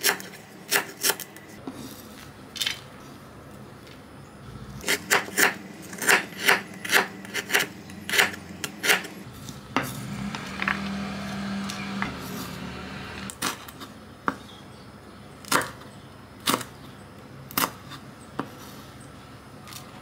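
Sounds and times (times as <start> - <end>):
blade scraping across board: 4.7 - 13.3
knife cutting on wooden board: 4.8 - 10.8.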